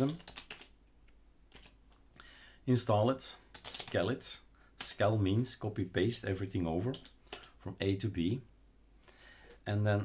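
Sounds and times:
computer keyboard keystrokes: 0.0s - 0.8s, 1.5s - 1.8s, 3.5s - 4.0s.

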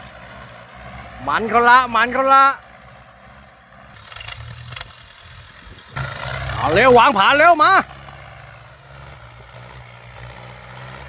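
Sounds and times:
tractor engines humming: 0.0s - 11.0s
person shouting: 6.6s - 7.9s.

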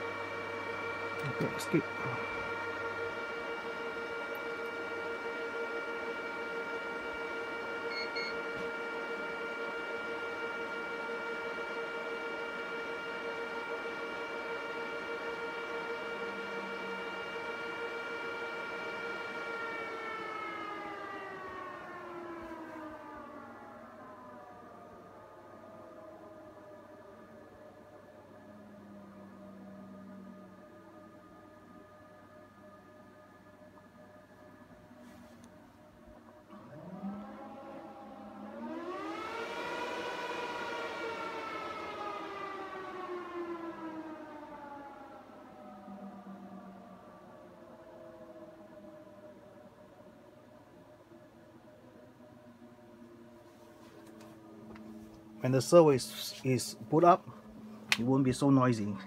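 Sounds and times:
server cooling fans whining: 0.0s - 59.0s.

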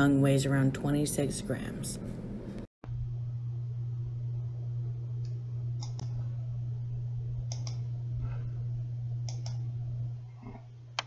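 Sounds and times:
low electrical hum: 0.0s - 11.0s
sharp clicks: 5.2s - 6.1s, 7.5s - 7.8s, 9.2s - 9.6s.

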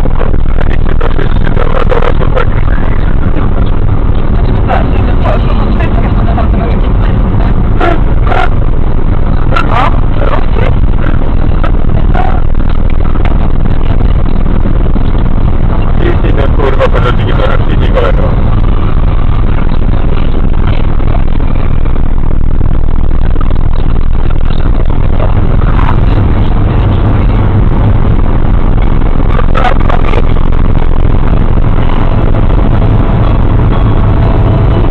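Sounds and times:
people talking: 0.0s - 22.0s, 23.0s - 34.9s
car road and engine noise: 0.0s - 34.9s.

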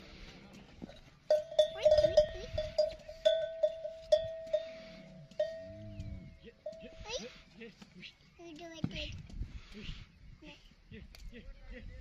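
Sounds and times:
metal animal bell clanking: 0.9s - 6.0s, 6.6s - 7.3s.

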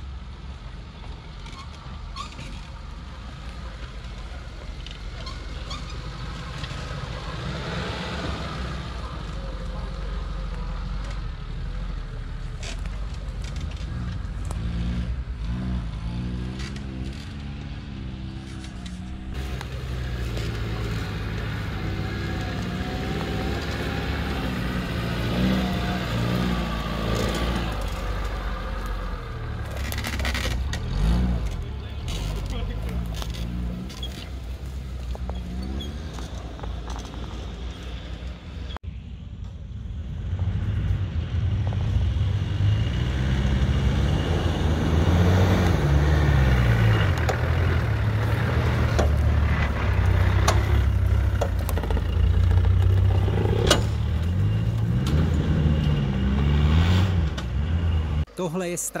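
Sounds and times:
engine revving under load: 4.9s - 38.0s, 40.1s - 58.3s.

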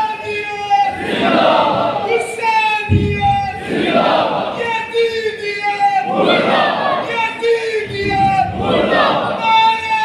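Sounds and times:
crowd of men shouting in unison: 0.9s - 2.2s, 3.2s - 4.6s, 6.0s - 10.0s.

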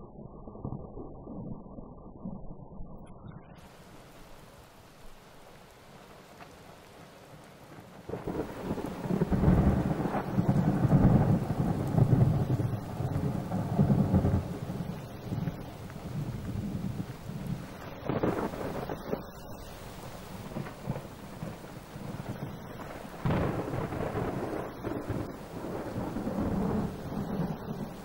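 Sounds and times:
rain: 3.6s - 28.0s
thunder rolling: 8.0s - 28.0s.

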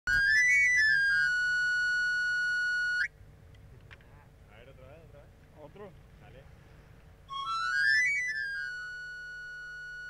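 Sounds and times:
panpipe whistle run: 0.1s - 3.1s, 7.3s - 10.0s.

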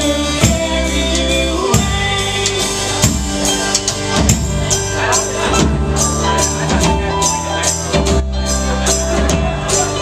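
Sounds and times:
drum kit steady beat: 0.0s - 10.0s
live band playing a waltz: 0.0s - 10.0s.

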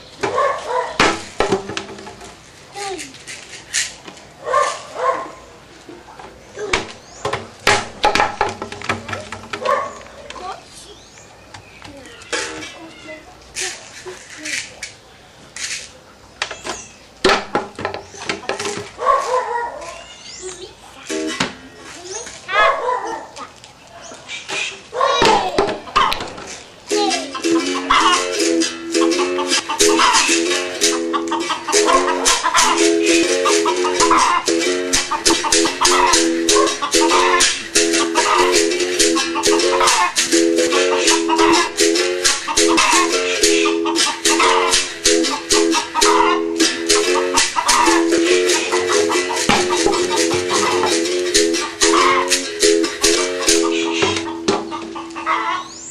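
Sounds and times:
person speaking: 2.7s - 3.3s, 26.9s - 27.8s
irregular taps: 49.4s - 51.0s.

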